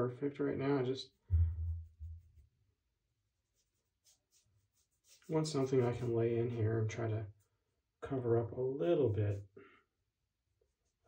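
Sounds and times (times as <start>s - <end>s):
low rumble: 1.3s - 2.2s.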